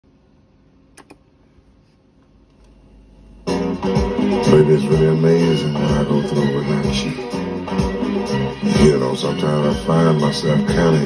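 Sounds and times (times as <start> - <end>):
record clicks: 0.9 - 1.2
music opening with guitar: 3.5 - 11.0.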